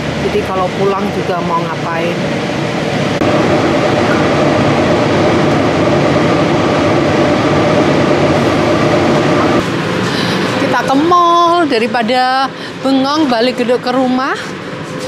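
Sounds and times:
multi-tone whine: 0:00.0 - 0:15.0
train rumble: 0:00.0 - 0:15.0.

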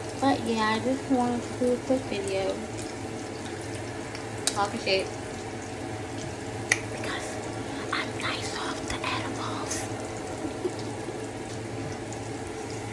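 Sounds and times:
fan running: 0:00.0 - 0:12.9
food cooking on stove: 0:00.0 - 0:12.9.

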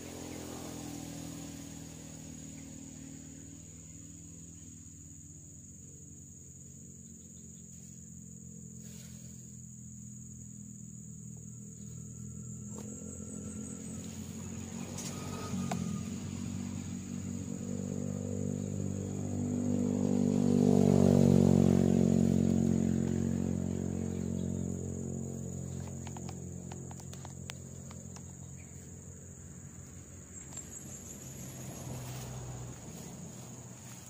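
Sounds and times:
high insect trill: 0:00.0 - 0:34.0
low droning hum: 0:00.0 - 0:34.0.

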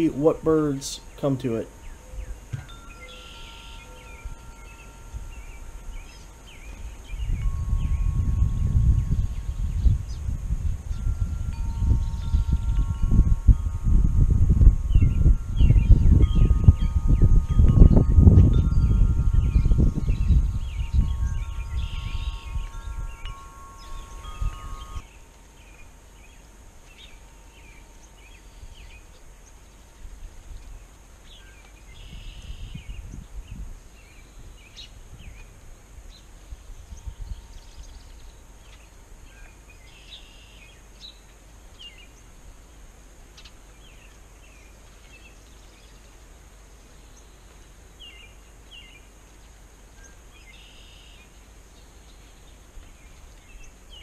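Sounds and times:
wind chimes ringing: 0:00.0 - 0:29.4, 0:36.9 - 0:38.8
wind gusts on microphone: 0:04.0 - 0:25.0, 0:31.9 - 0:38.3.

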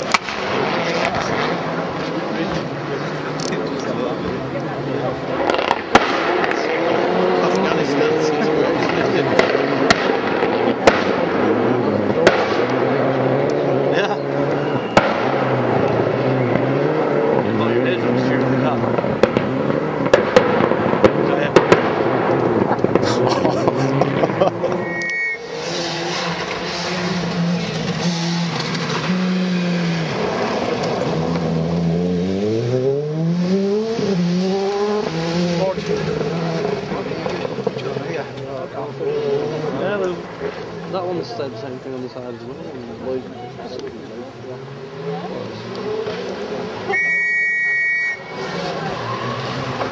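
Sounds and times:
rally car engine popping and banging: 0:00.0 - 0:02.7, 0:05.2 - 0:13.9, 0:14.5 - 0:24.8, 0:25.5 - 0:40.9, 0:48.4 - 0:49.9
engine accelerating through gears: 0:25.4 - 0:40.3.

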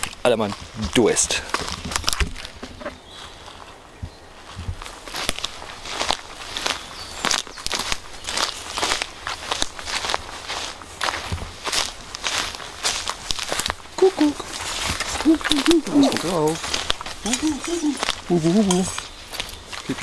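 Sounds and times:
footsteps on forest floor: 0:00.0 - 0:20.0
twigs crackling: 0:00.0 - 0:20.0.

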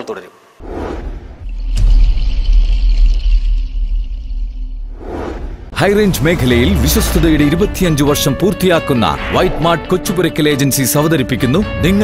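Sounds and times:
whoosh: 0:00.6 - 0:08.8
sharp hit: 0:00.9 - 0:09.3
deep bass rumble: 0:00.9 - 0:09.6.

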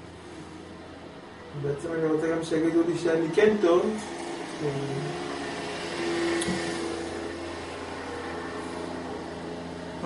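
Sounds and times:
mechanical room noise hum: 0:00.0 - 0:10.0.

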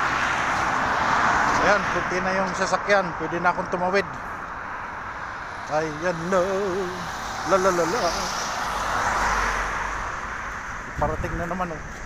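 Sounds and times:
vehicle passing close by: 0:00.0 - 0:03.6, 0:04.6 - 0:11.4.

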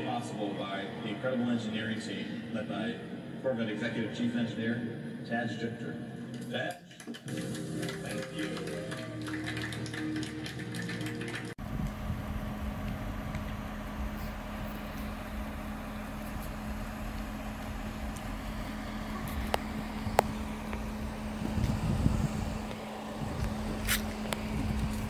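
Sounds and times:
car engine idling: 0:11.5 - 0:25.0.

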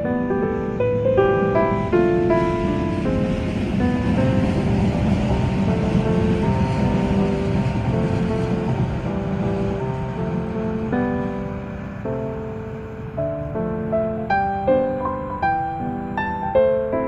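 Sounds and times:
soft piano music: 0:00.0 - 0:17.0
train rushing rumble: 0:00.0 - 0:17.0.

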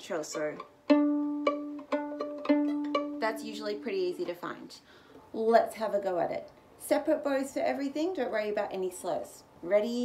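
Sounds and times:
violin plucked notes: 0:00.0 - 0:04.3.

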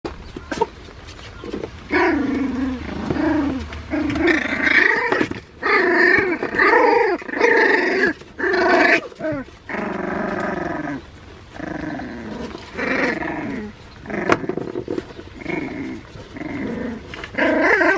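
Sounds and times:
puppies growling: 0:00.4 - 0:17.9.

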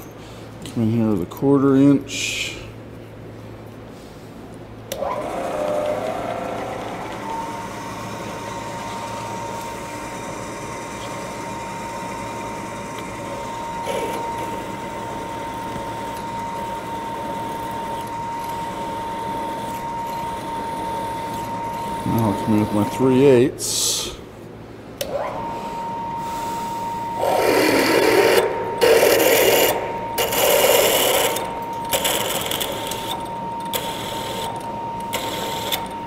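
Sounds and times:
milling machine spindle whine: 0:04.9 - 0:24.0, 0:25.0 - 0:36.0
drill bit drilling into metal: 0:27.2 - 0:33.2.

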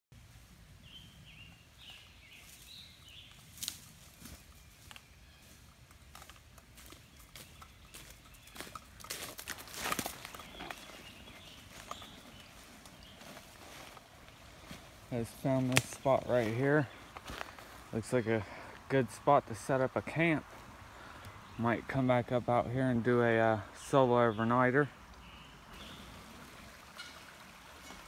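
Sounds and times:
footsteps on dry leaves: 0:02.4 - 0:18.0.

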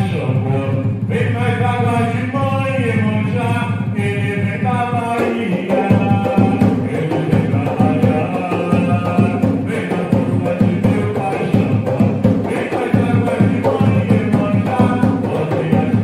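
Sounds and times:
hand drum rhythm: 0:00.0 - 0:16.0
man chanting into a microphone: 0:00.0 - 0:16.0.

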